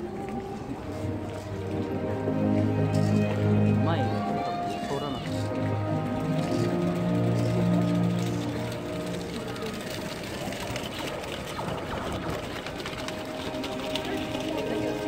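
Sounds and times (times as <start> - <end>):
music with long held notes: 0.0 - 15.0
voice: 3.8 - 5.5, 13.9 - 15.0.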